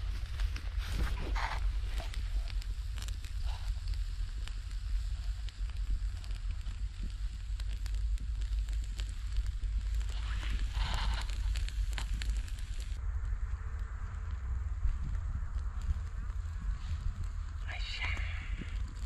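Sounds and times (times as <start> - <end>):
embers crackling and popping: 0.0 - 19.0
wind rumble on microphone: 0.0 - 19.0.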